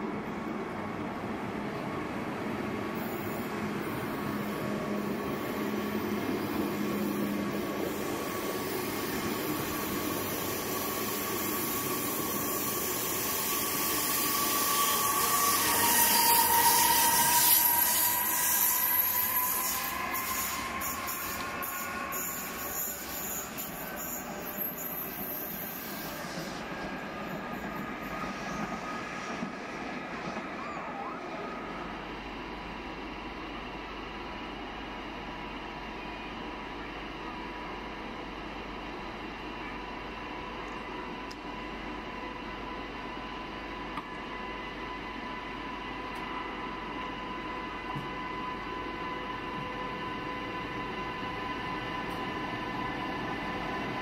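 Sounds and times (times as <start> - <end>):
train wheels rumbling on rail: 0.0 - 30.7
locomotive high whine: 0.3 - 54.0.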